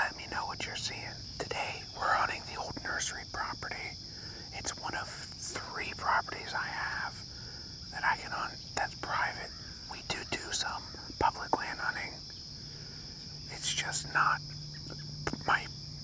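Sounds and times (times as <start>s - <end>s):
man whispering: 0.0s - 12.3s, 13.4s - 15.8s.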